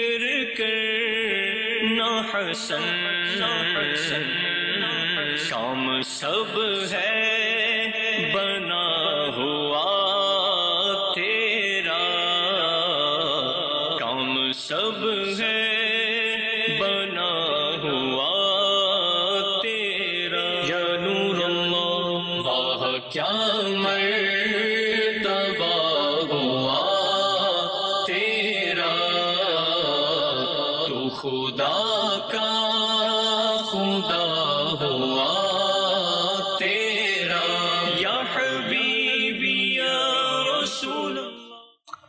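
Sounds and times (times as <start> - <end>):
man singing devotional song: 0.0 - 41.8.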